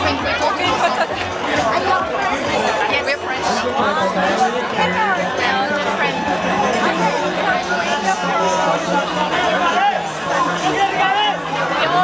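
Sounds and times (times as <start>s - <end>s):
crowd chatter: 0.0s - 12.0s
people talking over one another: 0.0s - 12.0s.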